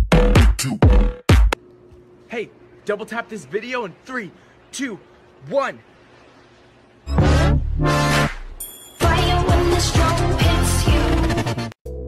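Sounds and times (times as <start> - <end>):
beat with heavy kick drum: 0.0 - 1.6
high jingle: 8.6 - 9.6.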